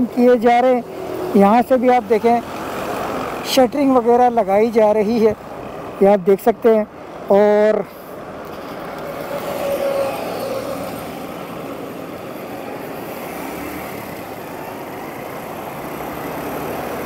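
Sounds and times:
road traffic rumbling: 0.0s - 17.0s.

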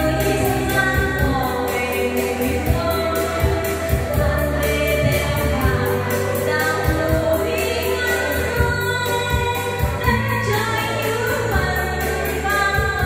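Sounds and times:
backing music with beat: 0.0s - 13.0s
woman singing into microphone: 0.0s - 13.0s.

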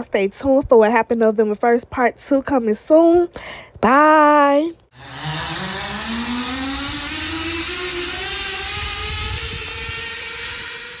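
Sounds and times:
zipline trolley whirring hiss: 5.0s - 11.0s.

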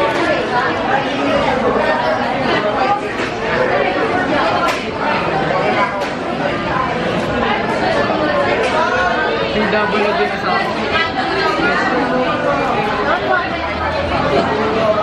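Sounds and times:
young people chatting: 0.0s - 15.0s.

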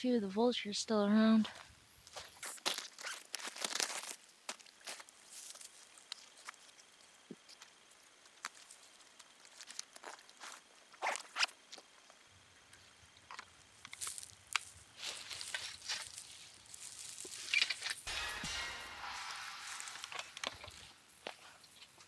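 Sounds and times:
rustling in dry grass: 13.7s - 22.0s.

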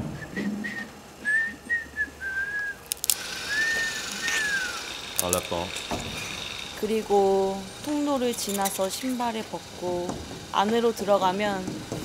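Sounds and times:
person whistling softly: 0.1s - 2.8s, 3.5s - 4.8s.

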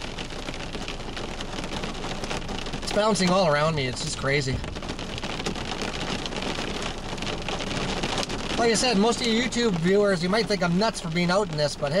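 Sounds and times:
heavy rain on car windshield: 0.0s - 12.0s.

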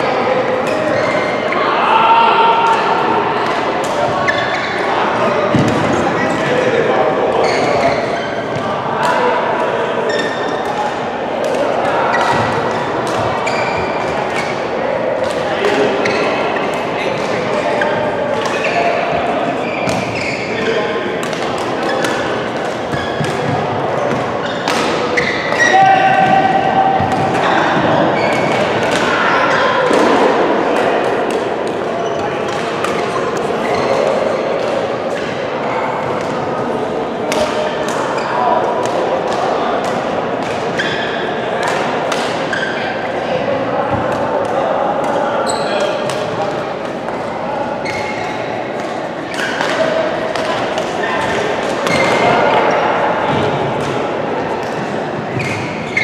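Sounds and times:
voices talking: 0.0s - 56.0s
rackets striking shuttlecock: 21.2s - 25.7s, 37.3s - 38.2s, 41.6s - 42.6s, 48.7s - 52.6s.

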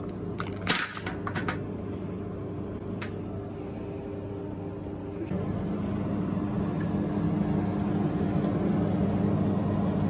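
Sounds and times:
ventilation fan hum: 0.0s - 10.0s.

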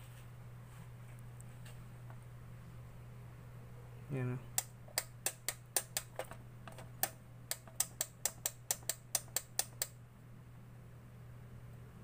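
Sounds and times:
low mains hum: 0.0s - 12.0s
rapid sharp clicks: 4.5s - 10.0s.

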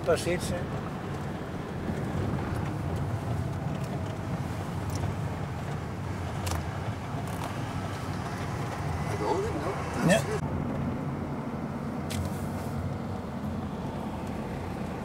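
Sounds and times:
car interior engine rumble: 0.0s - 15.0s.

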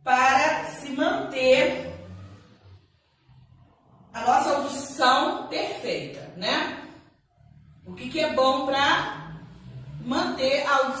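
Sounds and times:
woman speaking: 0.0s - 2.1s, 4.2s - 6.9s, 7.9s - 9.4s, 10.0s - 11.0s
faint low hum: 0.0s - 11.0s.

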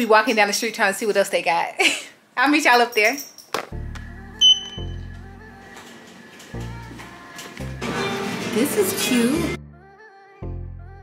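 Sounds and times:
background music with bass notes: 3.7s - 5.8s, 6.5s - 11.0s
short high beep: 4.4s - 5.1s.

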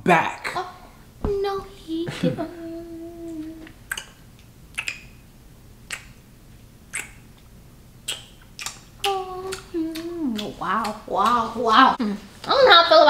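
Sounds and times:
kissing smacks: 3.3s - 5.2s, 5.8s - 6.2s, 6.9s - 11.5s.

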